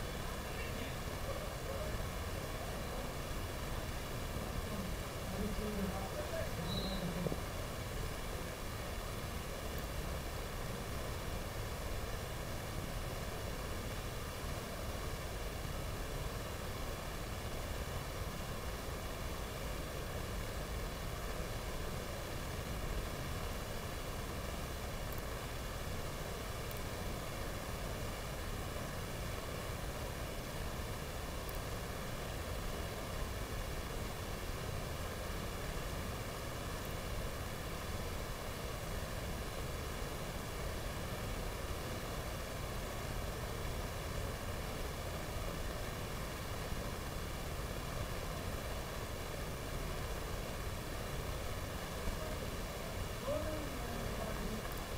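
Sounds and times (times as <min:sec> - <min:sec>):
steady hiss: 0:00.0 - 0:54.9.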